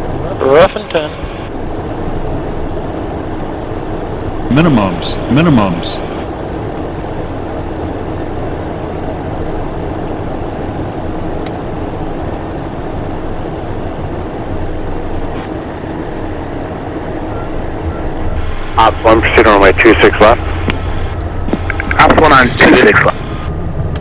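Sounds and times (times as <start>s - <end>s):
airflow noise: 0.0s - 23.8s
constant low hum: 0.0s - 24.0s
jet engines in cockpit: 0.0s - 24.0s.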